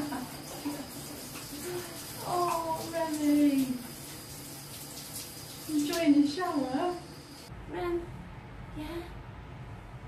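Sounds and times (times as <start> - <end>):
shower head spraying water: 0.0 - 7.5.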